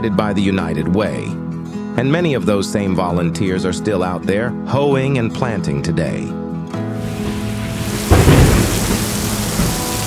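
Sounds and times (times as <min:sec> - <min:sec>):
heavy rain hiss: 0:07.0 - 0:10.0
thunder clap rumbling: 0:07.0 - 0:10.0.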